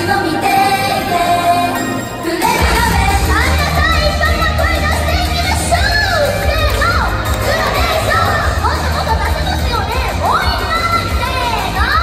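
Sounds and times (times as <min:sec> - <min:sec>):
high-pitched voices shouting: 0:00.0 - 0:12.0
pop backing track: 0:00.0 - 0:12.0
crowd cheering: 0:02.3 - 0:12.0.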